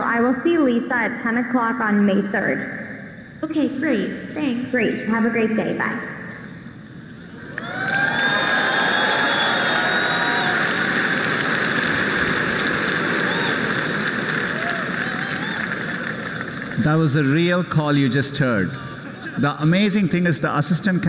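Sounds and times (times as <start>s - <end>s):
audience applauding and cheering: 7.2s - 18.1s.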